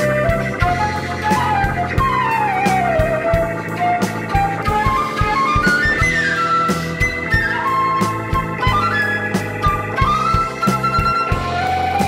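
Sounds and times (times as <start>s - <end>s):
flute melody: 0.0s - 12.0s
rock band playing: 0.0s - 12.0s.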